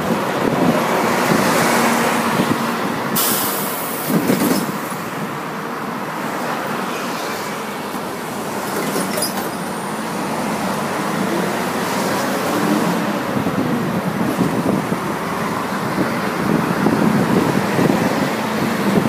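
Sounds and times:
bus engine and road noise: 0.0s - 19.0s
air brake hiss: 3.2s - 4.1s.

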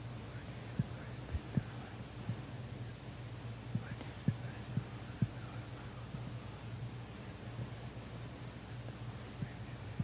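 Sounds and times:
soft low thumps: 0.7s - 2.5s, 3.7s - 5.5s.

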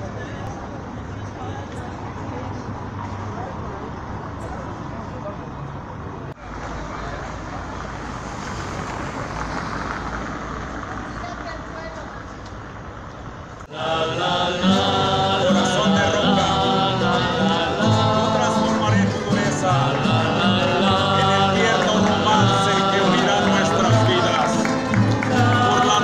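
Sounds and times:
murmur of voices: 0.0s - 9.4s, 10.8s - 26.0s
traffic noise: 0.0s - 26.0s
people singing: 13.7s - 26.0s
guitars and double bass playing: 13.8s - 26.0s.

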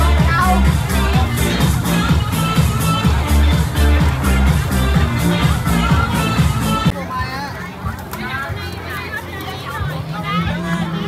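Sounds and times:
background music with bass: 0.0s - 11.0s
children calling and playing: 0.0s - 11.0s
crowd chatter: 0.0s - 11.0s.

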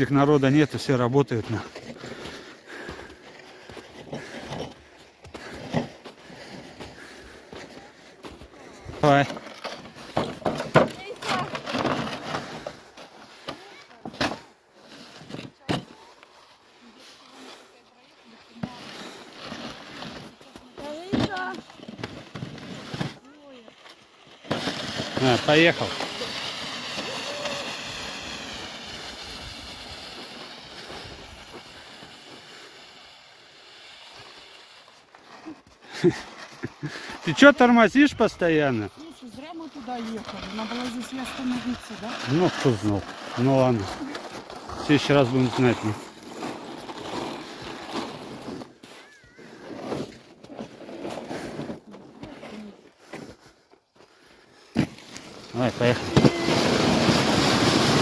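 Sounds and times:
sled sliding over snow: 0.0s - 58.0s
footsteps in snow: 34.1s - 54.2s.

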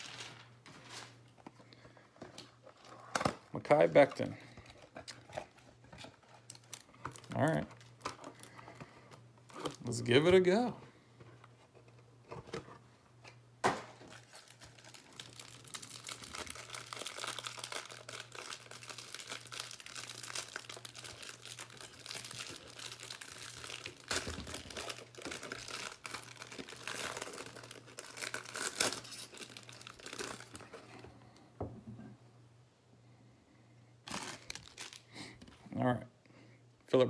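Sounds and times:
plastic wrapper tearing and crinkling: 0.0s - 1.3s, 2.4s - 8.6s, 9.5s - 10.7s, 14.0s - 30.7s, 34.0s - 35.2s.

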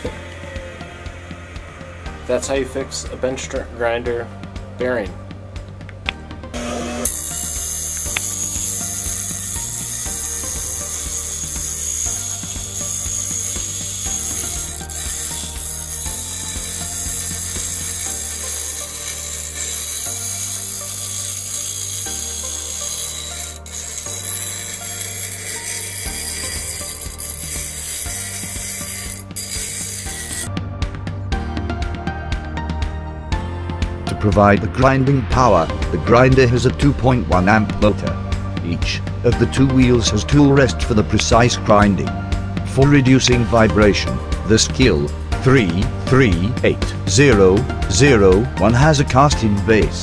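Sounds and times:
bench grinder grinding steel: 6.5s - 30.5s.

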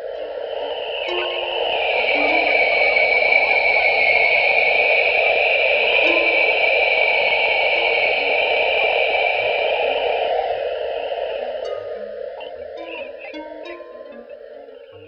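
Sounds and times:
hissing electronic wash: 0.0s - 15.0s.

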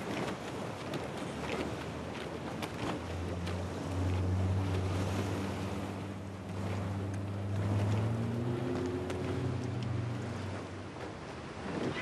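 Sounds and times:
motorboat engine humming: 0.0s - 12.0s.

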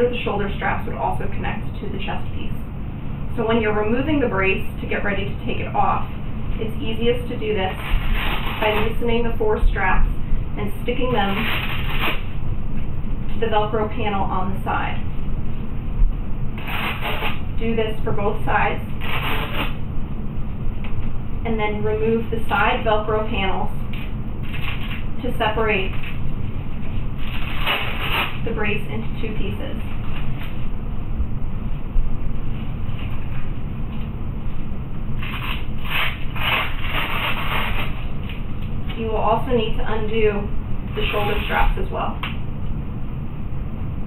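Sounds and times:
steady low rumble: 0.0s - 44.0s
scratchy rubbing of straps: 7.6s - 9.1s, 11.2s - 12.4s, 16.6s - 17.4s, 18.9s - 19.8s, 24.0s - 25.1s, 26.8s - 28.5s, 35.2s - 38.4s, 41.0s - 41.8s
velcro strap ripping: 7.7s - 8.9s, 11.2s - 12.3s, 16.6s - 17.4s, 19.0s - 19.8s, 23.9s - 25.0s, 27.2s - 28.4s, 35.2s - 38.4s.

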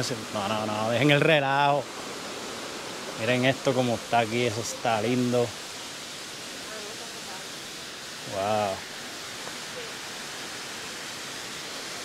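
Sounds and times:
water rushing over dam wall: 0.0s - 12.0s.

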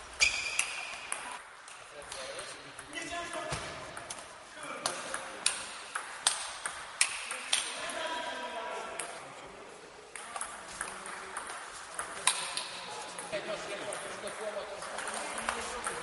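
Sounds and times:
voices in a hall: 0.0s - 16.0s.

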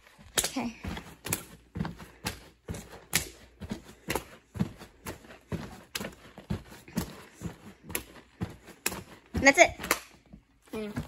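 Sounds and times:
feet landing on gym mats: 0.1s - 11.0s.

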